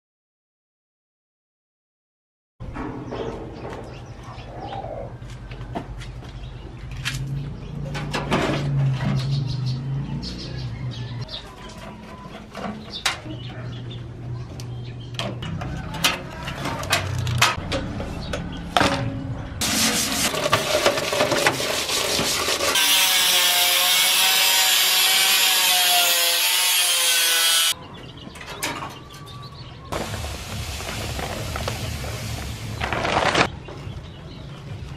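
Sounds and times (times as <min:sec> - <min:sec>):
pigeon cooing: 0:04.2 - 0:05.2
angle grinder cutting sheet steel: 0:19.6 - 0:27.8
rough rubbing and scrubbing: 0:19.6 - 0:27.8.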